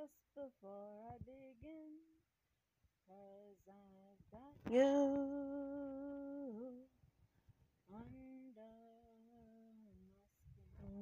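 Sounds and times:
woman singing long notes: 3.1 - 6.9.

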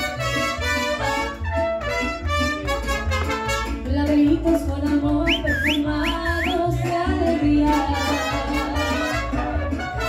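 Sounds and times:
mariachi music: 0.0 - 10.0
person whistling: 5.2 - 6.6.

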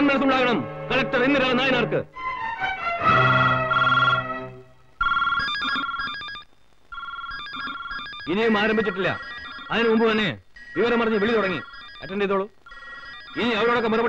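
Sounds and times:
telephone trilling ring: 3.1 - 14.0
person speaking: 8.2 - 14.0.

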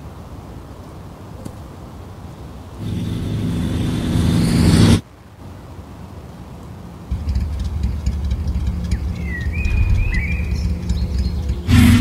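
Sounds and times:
motorcycle engine running: 7.1 - 12.0.

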